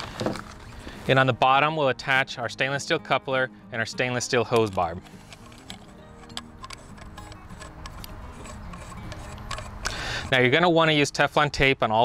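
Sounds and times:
soft background music: 0:00.0 - 0:12.0
clicks of metal pipe fittings: 0:04.4 - 0:10.3.

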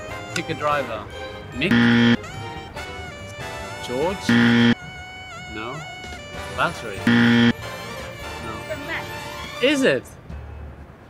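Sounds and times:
background music: 0:00.0 - 0:10.0
wrong-answer buzzer: 0:01.7 - 0:02.2, 0:04.3 - 0:04.8, 0:07.1 - 0:07.6.

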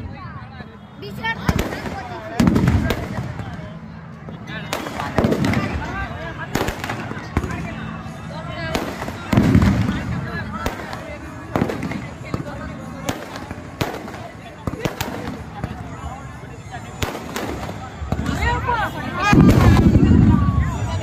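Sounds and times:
fireworks bangs: 0:01.3 - 0:07.8, 0:08.7 - 0:16.1, 0:16.9 - 0:21.0.

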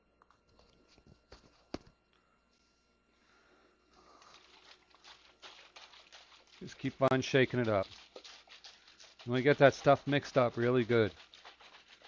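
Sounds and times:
liquid swishing in plastic bottle: 0:04.1 - 0:12.0.

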